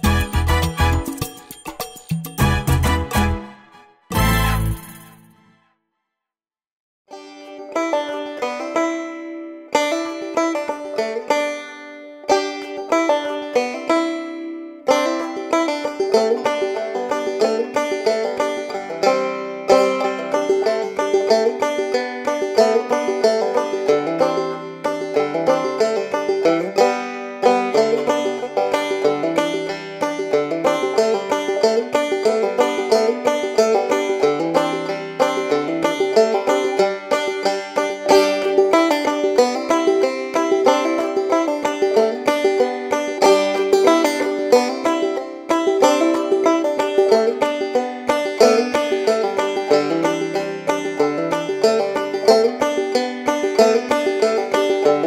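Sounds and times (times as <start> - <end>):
fast bluegrass string picking: 7.6 - 55.0.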